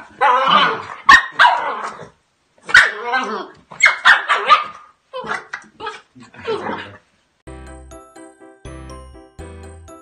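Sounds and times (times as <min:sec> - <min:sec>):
puppy barking: 0:00.2 - 0:02.0, 0:02.7 - 0:03.2, 0:03.8 - 0:05.5.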